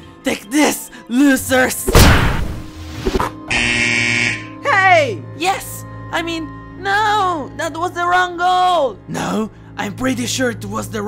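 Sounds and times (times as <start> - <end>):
cartoon ball kick hit: 1.9 - 3.3
goal buzzer: 3.5 - 4.5.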